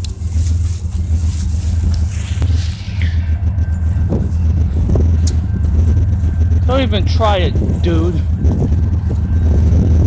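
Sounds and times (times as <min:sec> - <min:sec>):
freight train diesel drone: 0:00.0 - 0:10.0.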